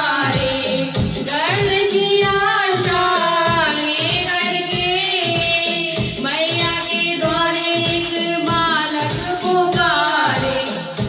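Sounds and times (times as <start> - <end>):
backing music with steady beat: 0.0 - 11.0
woman singing into a microphone: 0.0 - 11.0.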